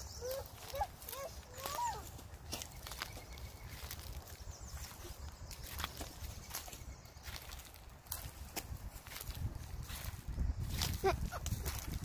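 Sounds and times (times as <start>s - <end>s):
dry leaves and twigs crackling underfoot: 0.0s - 12.0s.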